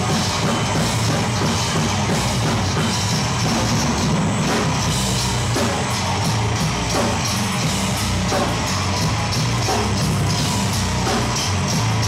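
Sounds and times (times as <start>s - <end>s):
bass chugging: 0.0s - 12.0s
distorted electric guitar: 0.0s - 12.0s
pounding drum kit: 0.0s - 12.0s.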